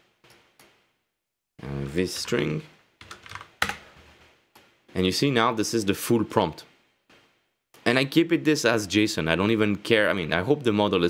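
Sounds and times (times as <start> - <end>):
computer keyboard keystrokes: 3.0 - 3.8.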